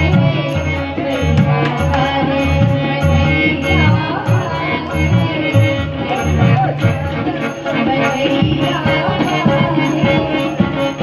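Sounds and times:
harmonium: 0.0 - 11.0
tabla bass strokes: 0.0 - 11.0
woman singing: 0.0 - 11.0.

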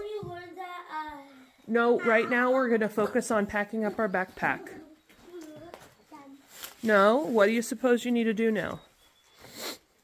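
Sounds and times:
young child speaking: 0.0 - 1.6, 4.8 - 6.5
woman speaking: 1.7 - 5.0, 6.8 - 8.8.

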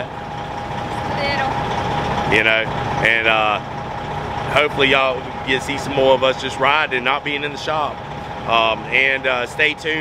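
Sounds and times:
truck engine rumble with whine: 0.0 - 10.0.

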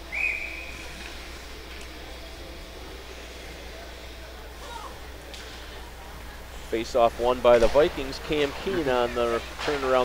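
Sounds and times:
whistle blown: 0.0 - 0.9
low hum: 0.0 - 10.0.

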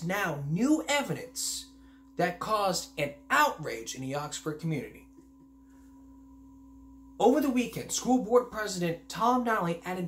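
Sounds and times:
two-tone steady hum: 0.0 - 10.0.

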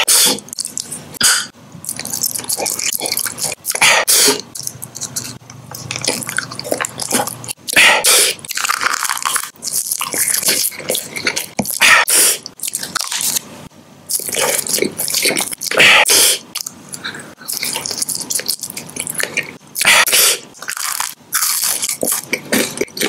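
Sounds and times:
chewing soft candy: 0.4 - 1.0, 1.8 - 3.8, 4.4 - 13.5, 14.1 - 15.8, 16.4 - 23.0.

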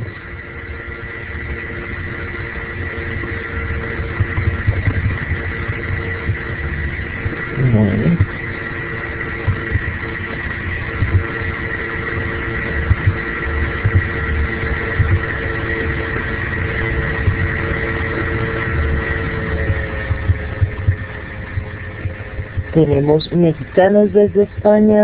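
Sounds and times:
steady hum with whine: 0.0 - 25.0
low rumbling thumps: 3.5 - 25.0.

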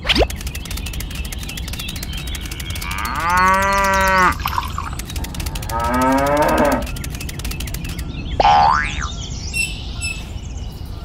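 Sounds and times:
cow mooing: 2.8 - 4.4, 5.7 - 6.9.

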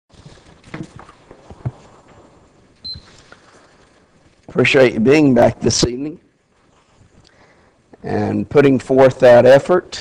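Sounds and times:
short high beep: 2.8 - 3.1.

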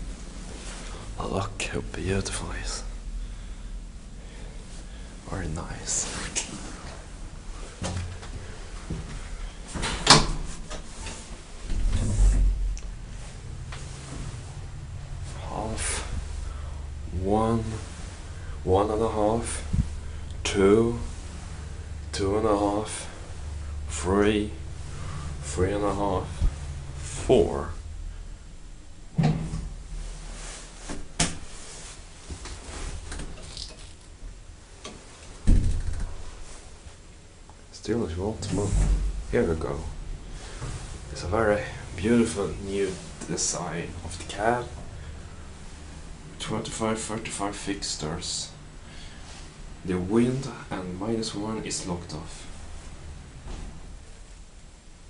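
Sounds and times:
elevator machinery hum: 0.0 - 55.0
elevator doors knocking and clunking: 9.7 - 10.9, 29.1 - 29.8, 35.4 - 36.2
elevator door shutting: 9.7 - 16.2, 38.4 - 39.6
heavy thump: 29.1 - 30.0, 35.4 - 36.1, 38.5 - 39.5.

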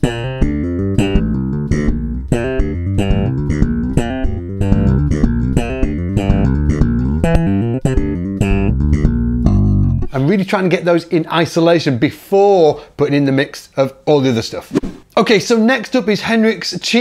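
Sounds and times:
slap bass guitar riff: 0.0 - 10.2.

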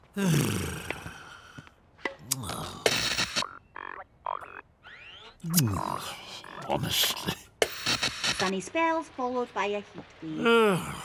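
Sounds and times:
buzzy electronic blips: 3.0 - 5.4
television static hiss: 5.5 - 11.0.

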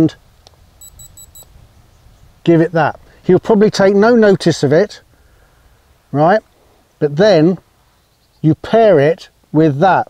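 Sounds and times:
high-pitched collar beeps: 0.8 - 1.5.

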